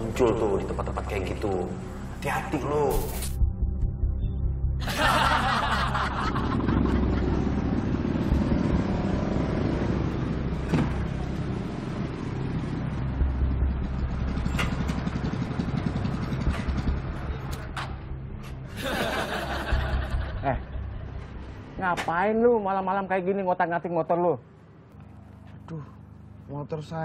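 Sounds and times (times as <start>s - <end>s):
background music: 0.0s - 24.8s
motorcycle engines running: 5.2s - 22.2s.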